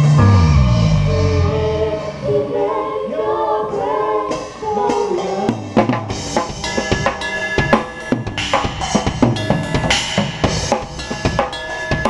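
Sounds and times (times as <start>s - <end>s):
vocalists singing gospel: 0.0s - 6.0s.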